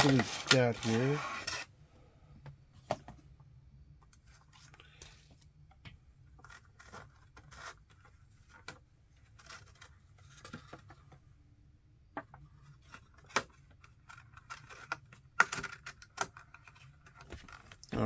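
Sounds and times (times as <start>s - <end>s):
cardboard packaging tearing and crinkling: 0.0s - 1.6s.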